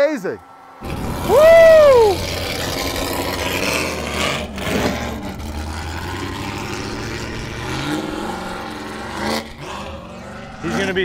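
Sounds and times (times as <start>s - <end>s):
truck engine revving: 0.4s - 11.0s.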